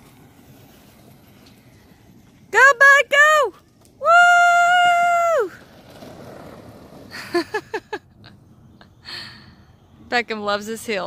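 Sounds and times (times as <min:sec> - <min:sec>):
person laughing: 0:07.1 - 0:08.3.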